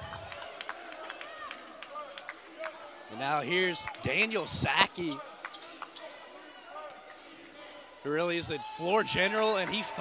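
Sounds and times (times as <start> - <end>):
gym background noise: 0.0 - 10.0.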